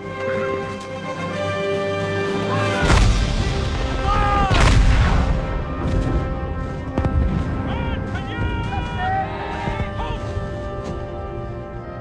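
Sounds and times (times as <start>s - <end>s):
film score music: 0.0s - 12.0s
battle noise: 6.9s - 11.2s.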